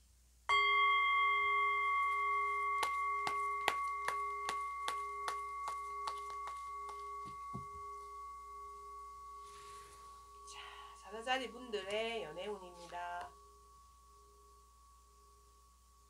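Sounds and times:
metal chime ringing: 0.5s - 15.7s.

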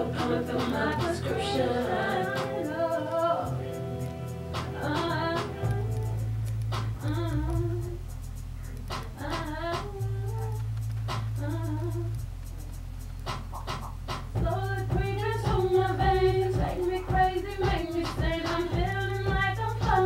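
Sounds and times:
woman singing: 0.0s - 3.6s, 4.8s - 6.1s, 7.0s - 8.0s, 9.2s - 10.6s, 11.4s - 12.2s, 14.4s - 20.0s
steady bass notes: 0.0s - 20.0s
light percussion clicks: 4.0s - 15.7s.

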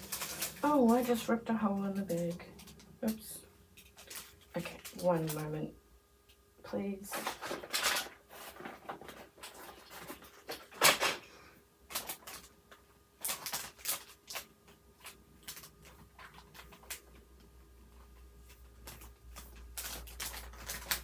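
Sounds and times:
plastic bag crinkling: 0.0s - 5.6s, 7.0s - 11.3s, 11.9s - 21.0s.

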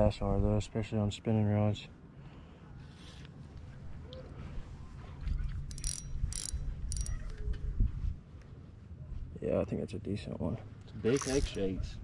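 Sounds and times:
fishing reel clicking: 5.7s - 7.3s, 11.1s - 11.6s.

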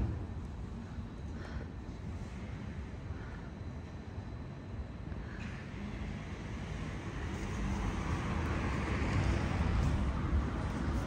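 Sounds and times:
vehicle passing with tyre hiss: 5.6s - 11.0s.

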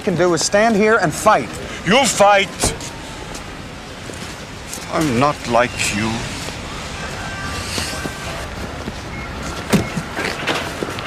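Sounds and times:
street background noise: 0.0s - 11.0s
car door slamming: 2.5s - 2.9s, 9.6s - 10.6s.

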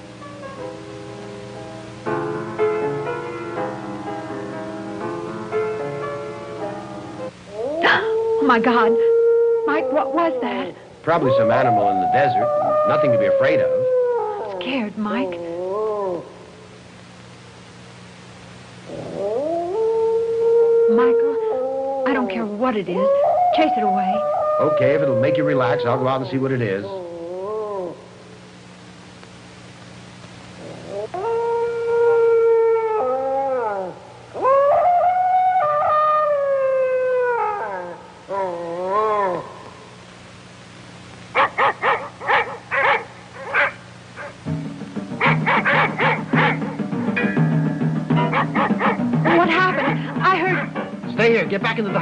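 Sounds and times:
faint low hum: 0.0s - 52.0s
animal howl: 7.5s - 16.6s, 18.9s - 28.3s, 30.6s - 39.9s, 41.4s - 44.4s, 45.2s - 46.8s, 48.2s - 50.8s
dog yelping: 9.6s - 16.3s, 20.9s - 26.2s, 41.4s - 44.4s, 45.2s - 46.8s, 48.2s - 50.8s.

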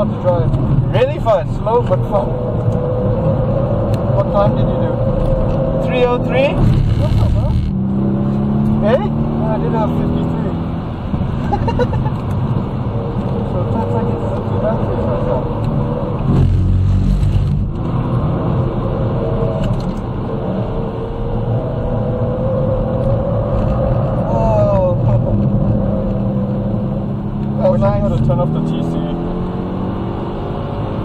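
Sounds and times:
car engine revving: 0.0s - 31.0s.

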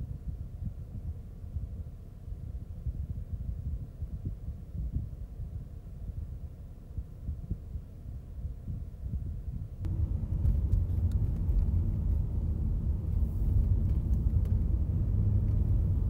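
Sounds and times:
low uneven rumble: 0.3s - 16.0s
car engine and tyre rumble: 9.7s - 16.0s.

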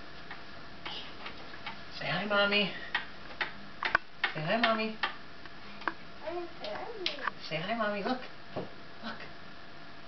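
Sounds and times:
faint room noise: 0.0s - 10.0s.

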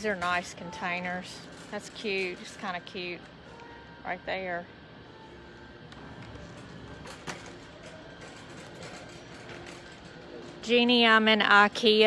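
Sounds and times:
faint background music: 0.0s - 12.0s
store hum: 0.0s - 12.0s.

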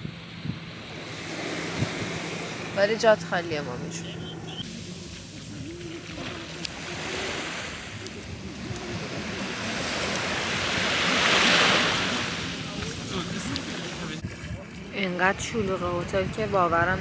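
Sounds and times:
sea waves breaking on sand: 0.0s - 4.0s, 4.6s - 14.8s.

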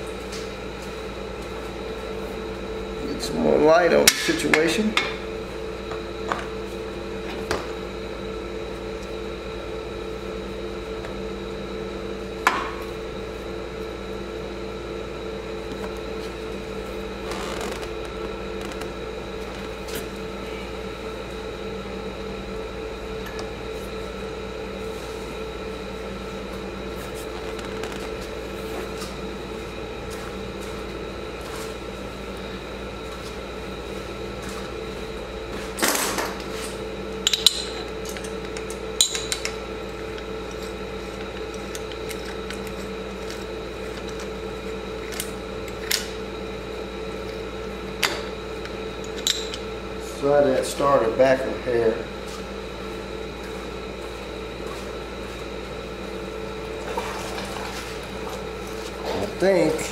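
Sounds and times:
steady hum: 0.0s - 59.9s.

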